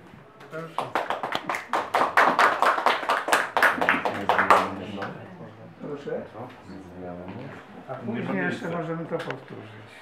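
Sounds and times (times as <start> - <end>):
audience applauding: 0.8 - 5.1.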